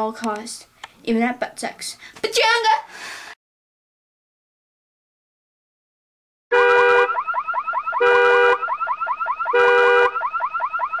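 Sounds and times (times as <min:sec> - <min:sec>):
car alarm: 0:06.5 - 0:11.0.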